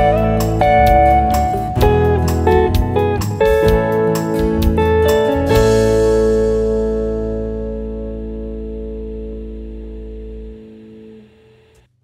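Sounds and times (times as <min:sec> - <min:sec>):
acoustic guitar chord ringing: 0:00.0 - 0:11.8
deep bass note: 0:03.6 - 0:11.5.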